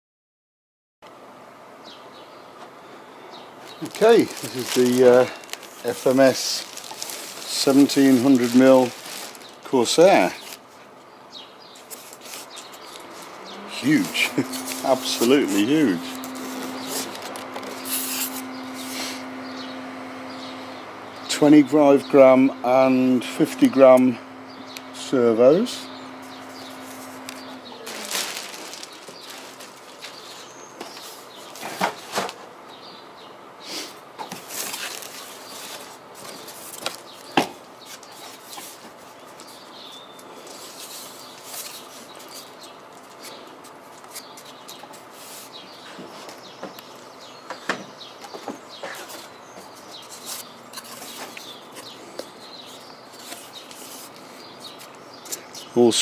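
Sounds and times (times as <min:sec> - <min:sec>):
plastic wrapping crinkling: 0:03.8 - 0:10.8, 0:11.8 - 0:19.2, 0:26.2 - 0:31.6, 0:34.3 - 0:39.6.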